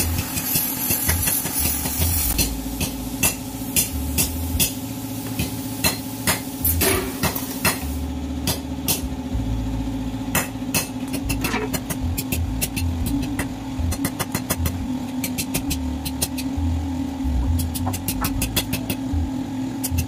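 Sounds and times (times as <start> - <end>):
low machine hum: 1.0 - 20.0
sharp taps and clicks: 10.4 - 16.5, 17.5 - 19.0.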